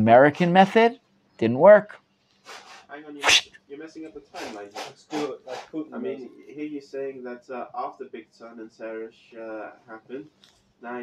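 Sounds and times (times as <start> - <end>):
sharp burst of breath: 2.4 - 3.5, 4.4 - 5.8.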